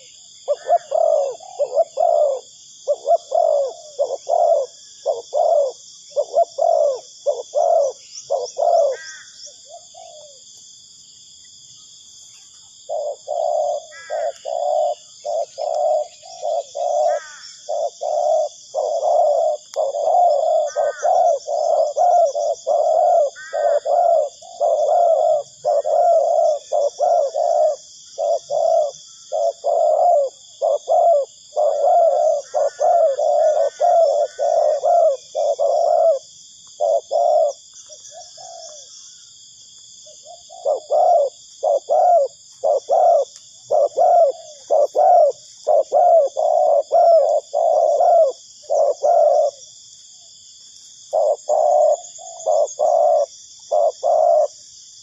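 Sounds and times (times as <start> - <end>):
doves cooing: 0.0 - 10.5, 12.7 - 39.4, 40.0 - 49.8, 51.0 - 54.6
faint high-pitched hiss: 0.0 - 55.0.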